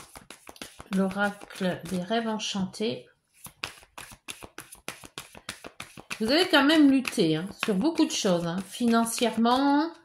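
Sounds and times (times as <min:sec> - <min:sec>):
cards being shuffled: 0:00.0 - 0:02.1, 0:03.3 - 0:09.6.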